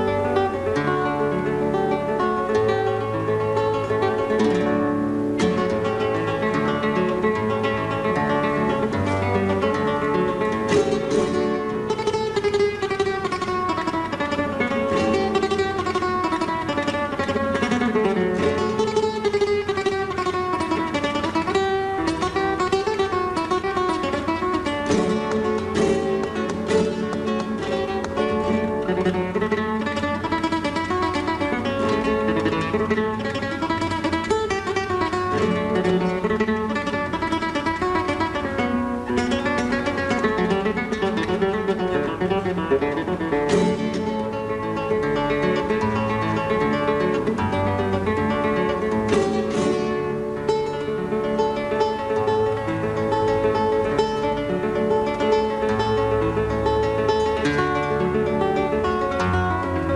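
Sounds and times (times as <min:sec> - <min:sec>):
flamenco guitar: 0:00.0 - 0:59.9.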